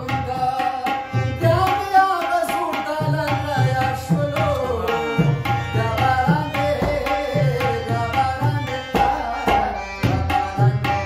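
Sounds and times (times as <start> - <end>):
harmonium melody: 0.0 - 11.0
tabla rhythm: 0.0 - 11.0.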